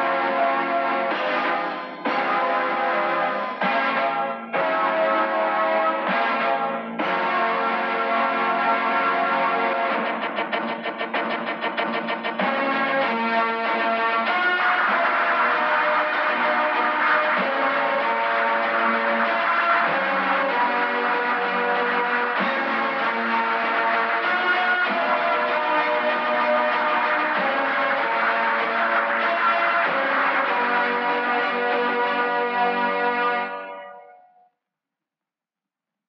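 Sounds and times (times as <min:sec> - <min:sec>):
background music: 0:00.0 - 0:34.4.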